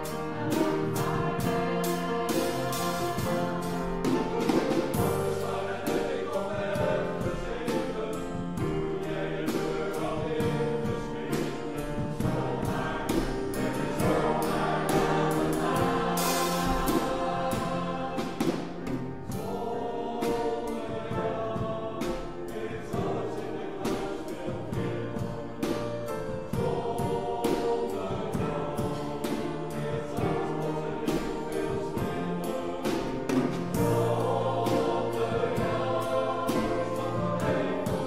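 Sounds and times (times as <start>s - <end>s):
choir singing in harmony: 0.0s - 38.0s
piano accompaniment: 0.0s - 38.0s.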